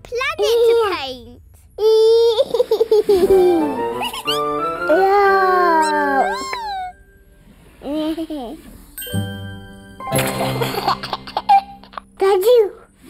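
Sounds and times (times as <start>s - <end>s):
playful children's music: 1.8s - 13.0s.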